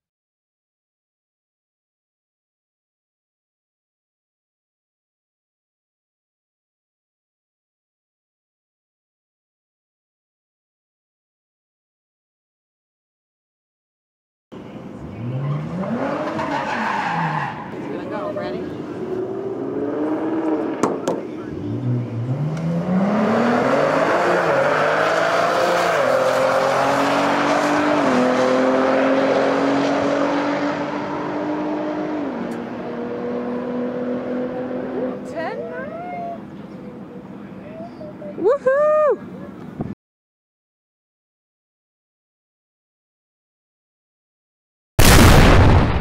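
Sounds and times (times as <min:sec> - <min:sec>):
car engine revving and accelerating: 0:14.9 - 0:35.5.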